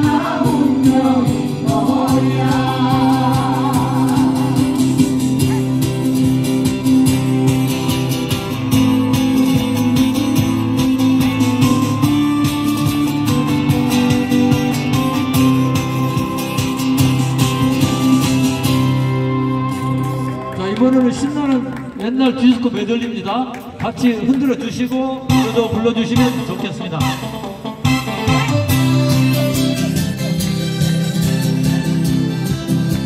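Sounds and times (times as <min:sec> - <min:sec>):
acoustic guitar strumming: 0:00.0 - 0:20.4, 0:25.3 - 0:33.0.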